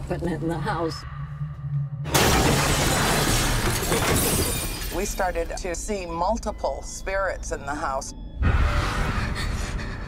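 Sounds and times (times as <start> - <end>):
glass shattering: 2.1 - 5.5.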